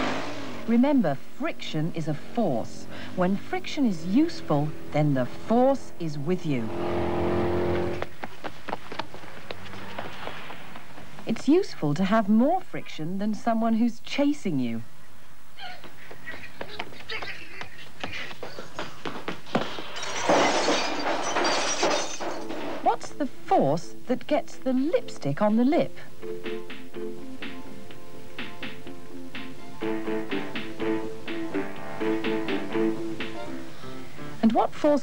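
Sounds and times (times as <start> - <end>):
racing car engine running: 0.0 - 0.7, 2.1 - 8.2
glass shattering: 19.6 - 22.9.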